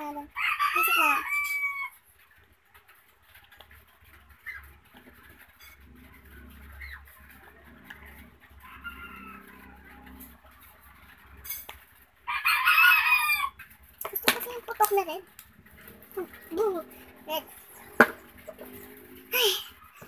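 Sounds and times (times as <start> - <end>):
rooster crowing: 0.3 - 2.0, 8.5 - 10.4, 12.2 - 13.6.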